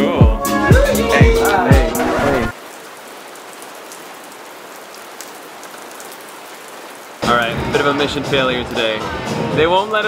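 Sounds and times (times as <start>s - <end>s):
steady rain falling: 1.4s - 10.0s.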